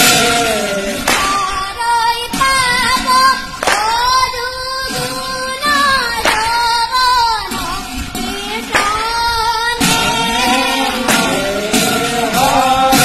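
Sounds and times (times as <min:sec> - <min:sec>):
boy singing a chant: 0:00.0 - 0:13.0.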